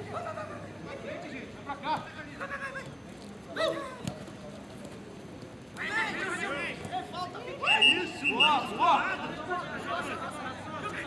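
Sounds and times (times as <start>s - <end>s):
footballers shouting: 5.8s - 11.0s.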